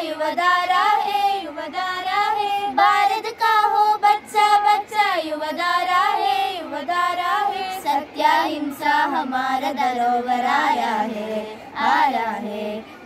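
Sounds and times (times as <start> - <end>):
girls singing unaccompanied: 0.0 - 13.0.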